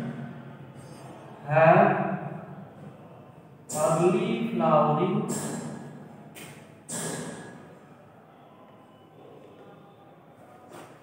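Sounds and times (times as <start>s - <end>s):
sudden hiss: 6.9s - 7.4s.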